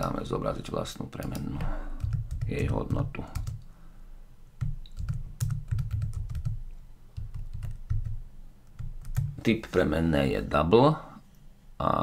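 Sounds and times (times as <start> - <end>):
typing on computer keyboard: 1.2 - 3.7, 4.6 - 6.6, 7.2 - 9.4.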